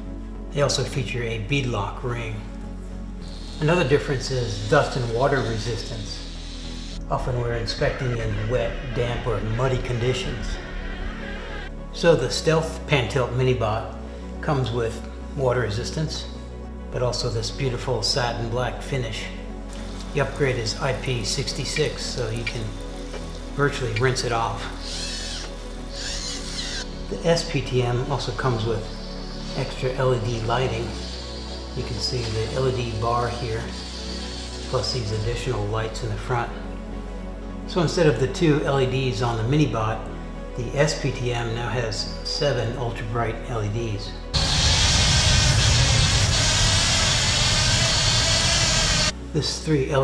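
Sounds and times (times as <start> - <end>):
background music: 0.0 - 50.0
light rain pattering: 19.7 - 24.8
small robot motors rumbling: 26.0 - 26.8.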